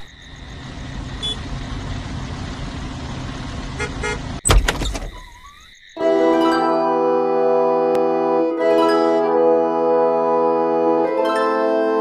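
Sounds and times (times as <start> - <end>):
vehicle engine running: 0.0 - 5.3
loud thump: 4.4 - 5.4.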